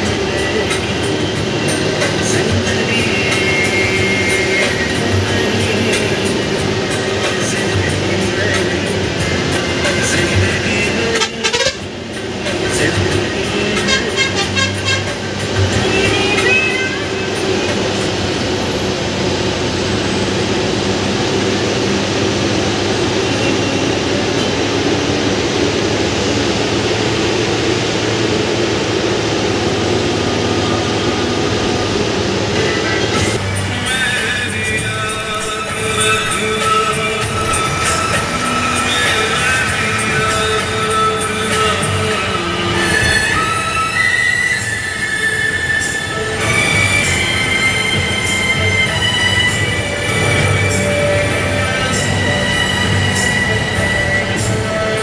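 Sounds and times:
bus engine and road noise: 0.0s - 55.0s
music playing: 0.0s - 55.0s
horn honks: 11.0s - 12.0s, 13.7s - 17.7s.

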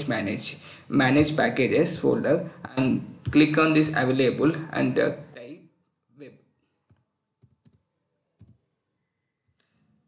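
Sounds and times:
keyboard and mouse clicks: 7.4s - 8.6s.

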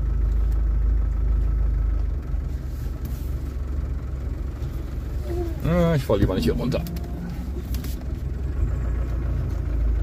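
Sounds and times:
off-road vehicle engine rumble: 0.0s - 10.0s.

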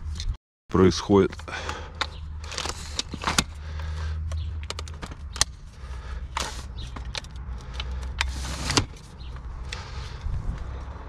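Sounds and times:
sharp metallic latch clicks: 4.3s - 5.6s
ladder sections sliding: 8.2s - 9.0s.

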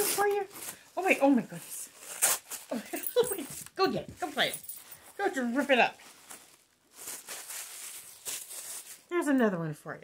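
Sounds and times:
paper crinkling and rustling: 0.0s - 9.1s.

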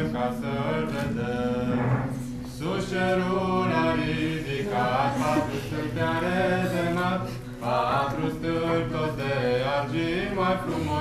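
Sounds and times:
group singing a carol: 0.0s - 11.0s.

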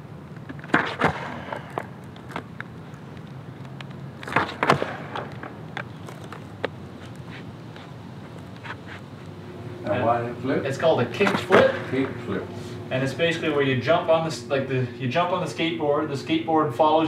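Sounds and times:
skateboard rolling on asphalt: 0.1s - 9.2s
skateboard popping and landing: 0.4s - 7.3s, 11.2s - 12.1s.

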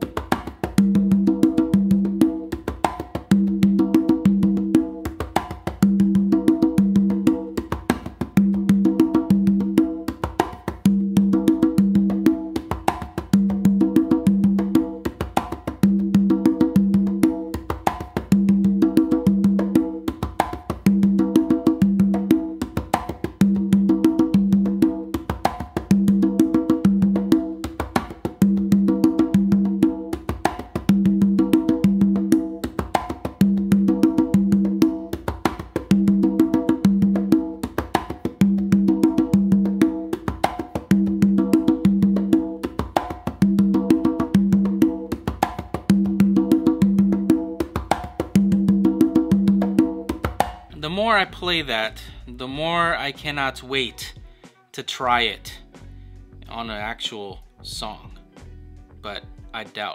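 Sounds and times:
congas played by hand: 0.0s - 59.9s.

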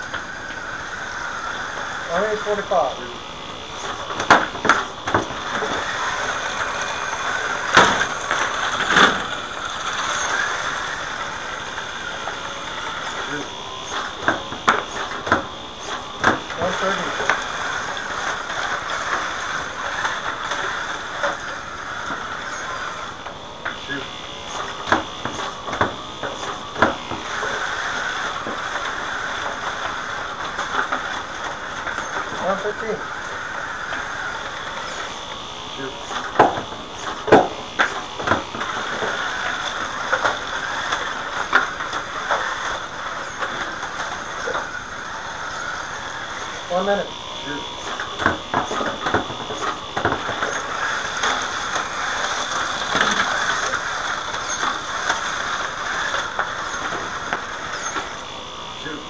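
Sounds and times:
robot motors whining: 0.0s - 59.0s
sharp clacks and knocks: 36.1s - 44.8s, 47.8s - 58.1s.

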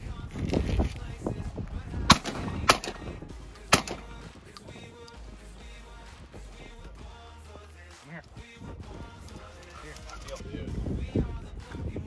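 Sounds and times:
shotgun shots: 2.1s - 3.1s, 3.7s - 4.2s.

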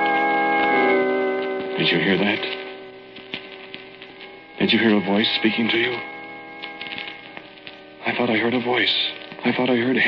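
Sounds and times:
steady hum: 0.0s - 9.8s
held tones: 0.0s - 9.9s
record surface clicks: 0.0s - 10.0s.

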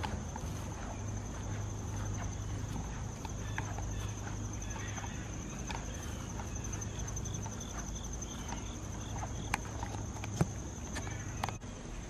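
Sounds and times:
footsteps on grass: 0.0s - 11.6s
insects trilling: 0.0s - 11.6s
low steady hum: 0.0s - 12.0s.

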